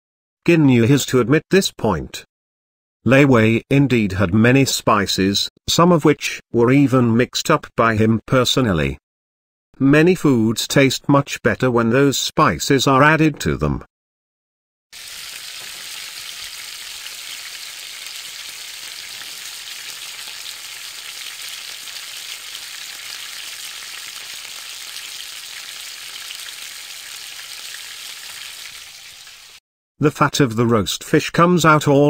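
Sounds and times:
fish sizzling on a grill: 15.0 - 29.6.

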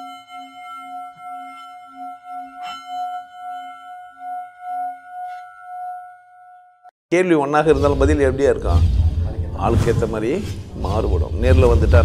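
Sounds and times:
bell-like metal tone ringing: 0.0 - 6.9.

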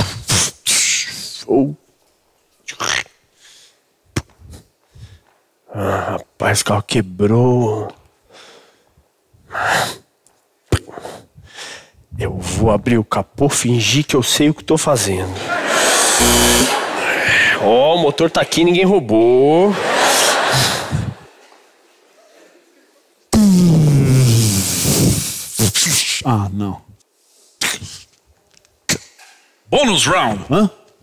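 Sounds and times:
man's breathy hiss: 9.5 - 10.1, 10.9 - 12.0, 24.4 - 25.8
man making breathy vocal sound: 23.4 - 26.4.

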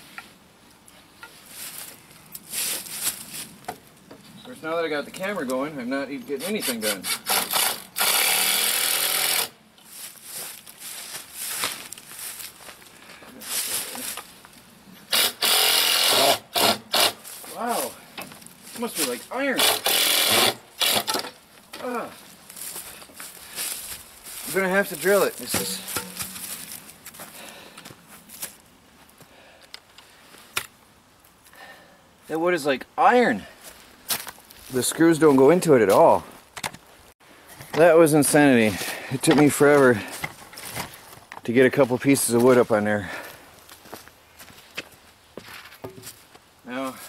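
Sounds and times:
rustling: 0.0 - 3.8, 9.8 - 14.7, 21.3 - 29.2
power drill driving a screw: 7.0 - 9.6, 15.1 - 17.2, 19.6 - 21.2
knocks and handling of boards: 25.4 - 26.6.

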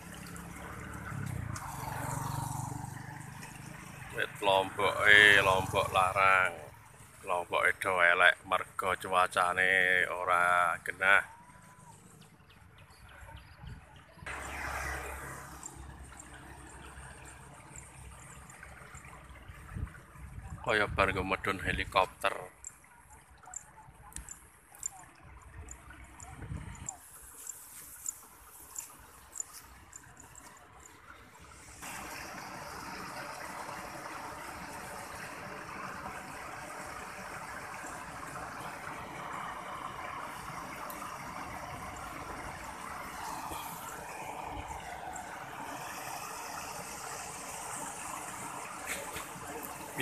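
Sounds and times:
water running in a channel: 0.0 - 50.0
light ticks: 23.6 - 25.0.

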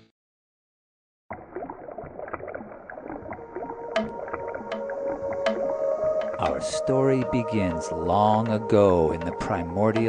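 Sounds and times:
water bubbling and gurgling: 1.3 - 10.0
music with held notes: 4.7 - 10.0.

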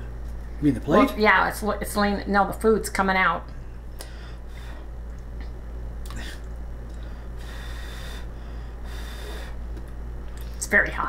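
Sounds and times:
man blowing on food: 7.4 - 9.8.

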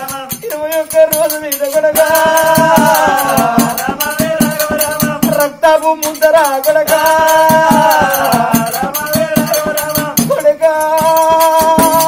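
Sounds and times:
person singing folk melody: 0.0 - 12.0
rattling percussion: 0.0 - 12.0.

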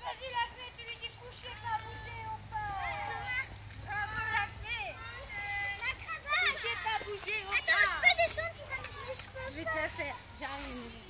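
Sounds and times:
children calling out and chattering: 0.0 - 11.0.

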